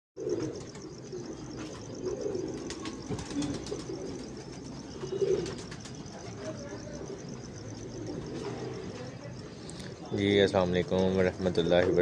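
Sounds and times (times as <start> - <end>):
pigeons cooing: 0.2 - 10.4.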